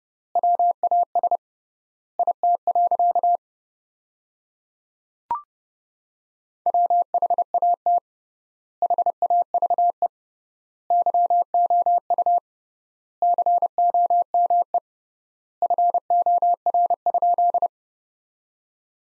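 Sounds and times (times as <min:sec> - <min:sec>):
morse code beeps: 0:15.6 - 0:17.7.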